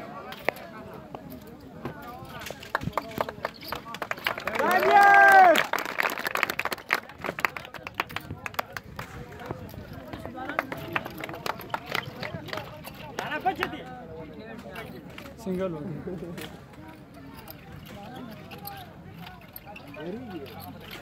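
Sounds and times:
outdoor crowd voices: 0.0 - 21.0
loud drawn-out yell: 4.6 - 5.7.

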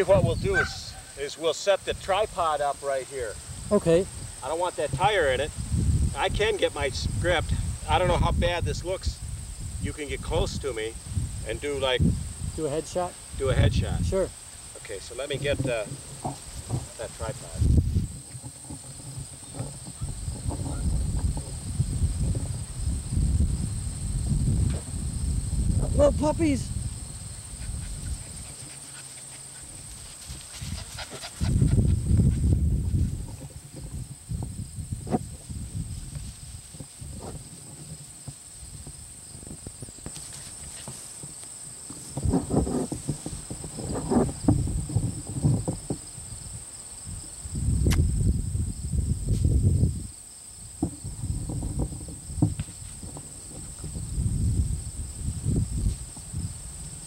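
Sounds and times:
puppies scuffling on grass: 26.8 - 33.7, 35.4 - 45.9.

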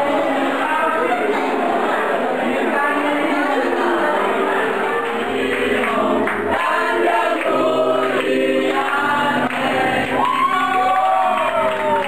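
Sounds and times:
voices singing together: 0.0 - 12.0.

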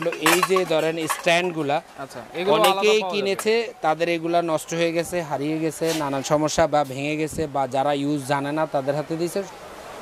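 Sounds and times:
metal handles clinking together: 0.0 - 1.6
man talking: 0.0 - 9.6.

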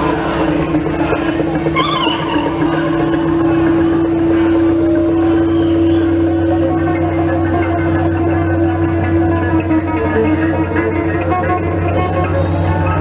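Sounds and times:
rock band low drone: 0.0 - 13.0.

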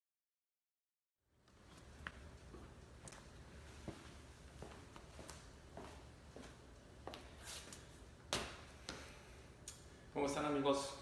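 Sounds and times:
shoe heels clicking on tile: 1.5 - 9.1.

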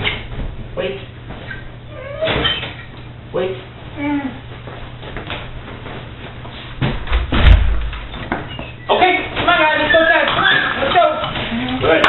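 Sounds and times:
steady low hum: 0.0 - 12.0
dog whining: 1.8 - 2.9.

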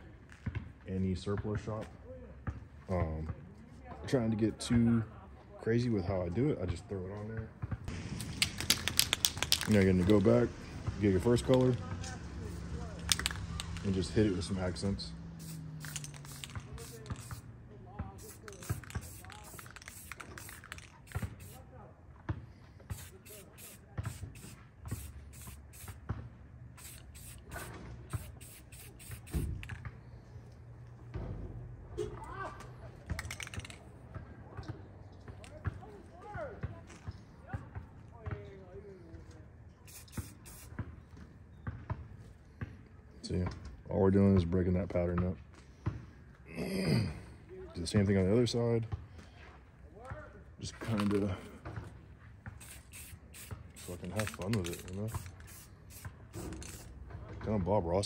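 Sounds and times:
spray can hissing: 8.2 - 10.3, 12.5 - 14.2, 15.4 - 17.5, 18.2 - 21.6, 22.9 - 26.0, 26.8 - 29.8, 39.9 - 40.7, 51.0 - 51.2, 52.5 - 57.0.

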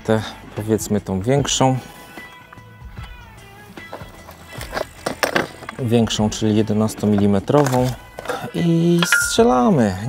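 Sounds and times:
faint music-like tones: 0.0 - 10.0.

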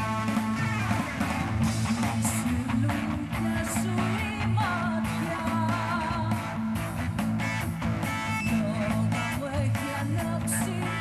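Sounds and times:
rock band playing: 0.0 - 11.0
woman singing: 2.1 - 6.8, 8.4 - 11.0.

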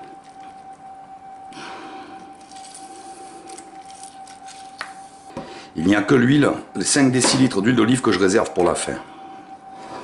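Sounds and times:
faint steady whine: 0.0 - 10.0.

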